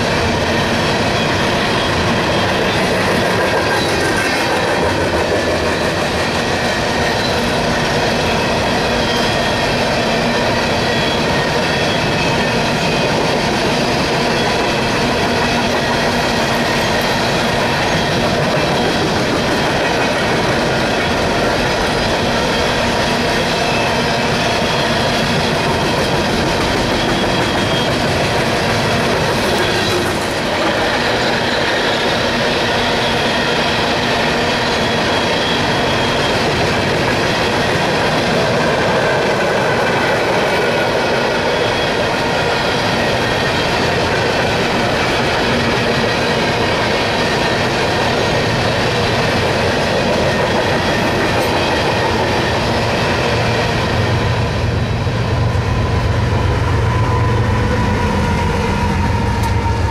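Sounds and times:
train wheels rumbling on rails: 0.0s - 59.9s.

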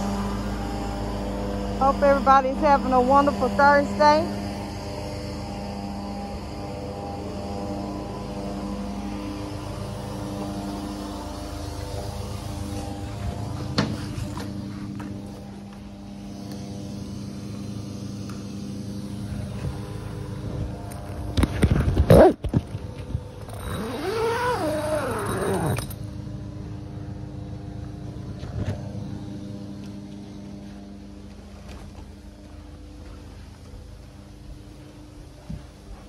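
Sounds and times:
carpet cleaning machine humming: 0.0s - 36.0s
drawn-out yowl: 23.5s - 25.9s.

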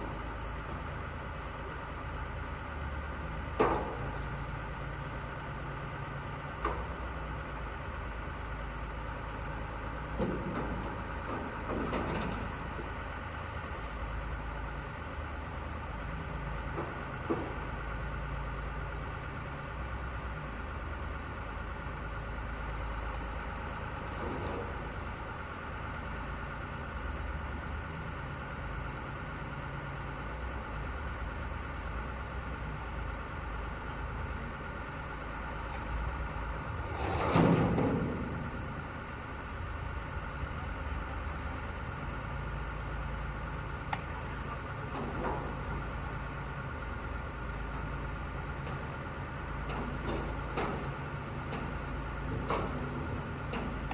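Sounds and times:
truck diesel engines idling: 0.0s - 53.9s.

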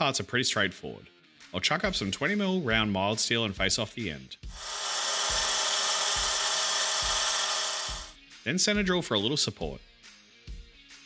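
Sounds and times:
lathe spindle running: 4.6s - 8.1s
metal lathe cutting hiss: 4.6s - 8.2s.

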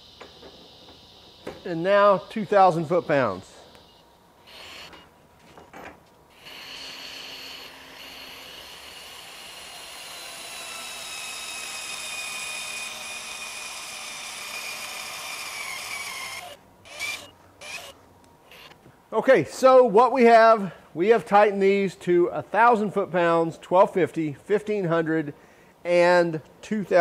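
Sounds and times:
torque wrench motor whine: 0.0s - 5.1s, 6.3s - 18.8s.

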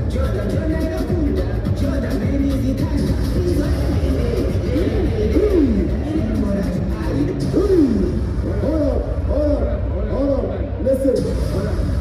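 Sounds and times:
heavy bass: 0.0s - 12.0s
loud amplified music: 0.0s - 12.0s.

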